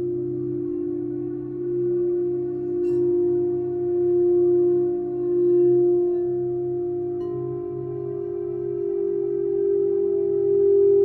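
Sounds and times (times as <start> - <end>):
singing bowl ringing tone: 0.0 - 11.0.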